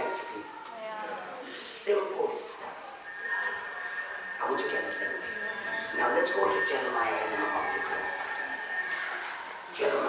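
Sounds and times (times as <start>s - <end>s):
high feedback whistle: 2.8s - 9.6s
man preaching through pa system: 4.4s - 8.3s, 9.7s - 10.0s.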